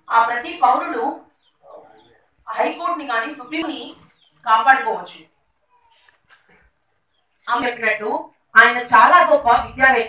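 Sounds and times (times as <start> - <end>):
woman speaking through microphone: 0.0 - 1.2, 2.5 - 5.2, 7.5 - 10.0
faint background sounds: 0.0 - 10.0.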